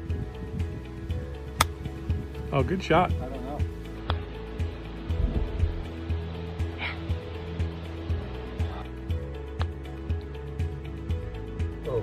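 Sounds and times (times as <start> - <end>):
background music: 0.0 - 12.0
golf club striking ball: 1.5 - 1.9.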